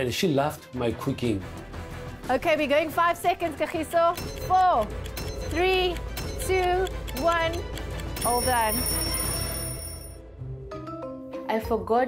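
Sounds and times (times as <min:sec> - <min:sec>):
high electronic tone: 0:08.2 - 0:10.2.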